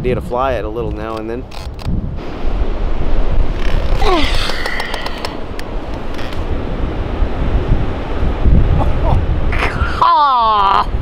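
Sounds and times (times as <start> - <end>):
surf: 0.0 - 11.0
wind buffeting microphone: 0.0 - 11.0.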